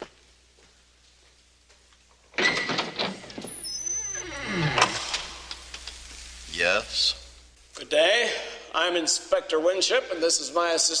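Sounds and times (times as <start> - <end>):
door hinge creaking: 2.4 - 5.3.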